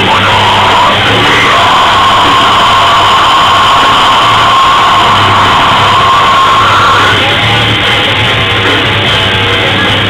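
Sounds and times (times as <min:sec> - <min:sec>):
distorted live rock band: 0:00.0 - 0:10.0.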